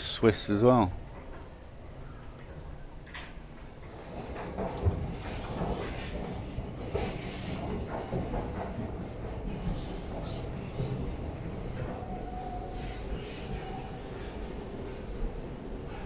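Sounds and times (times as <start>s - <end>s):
escalator rumbling and clattering: 1.0s - 12.0s.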